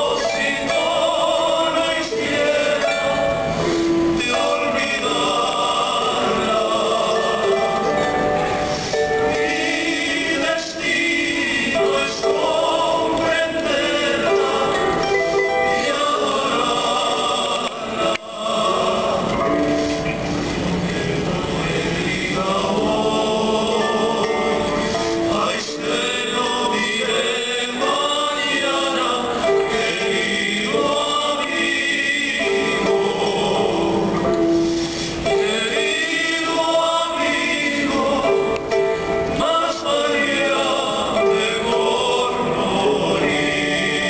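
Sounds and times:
voices singing: 0.0 - 44.0.

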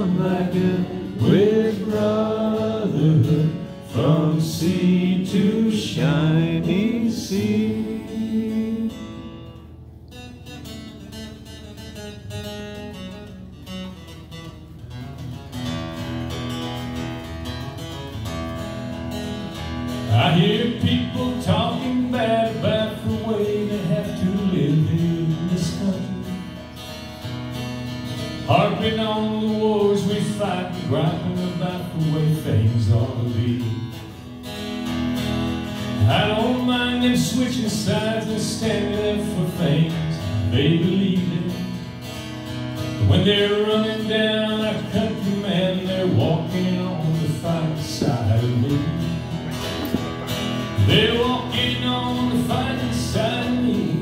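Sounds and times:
man singing: 0.0 - 9.3, 20.0 - 26.5, 28.4 - 34.0, 35.9 - 42.1, 42.9 - 49.2, 50.8 - 54.0
acoustic guitar strummed: 0.0 - 54.0.

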